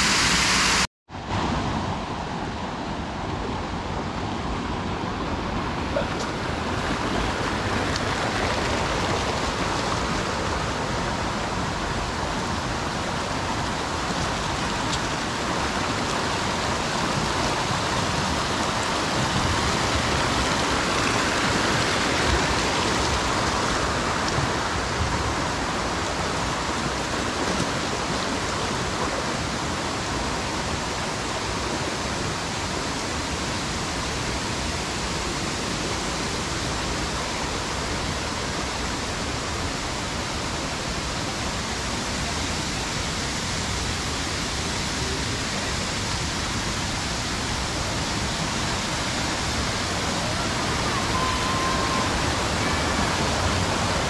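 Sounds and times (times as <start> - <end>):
stream rushing over cascades: 0.0 - 54.0.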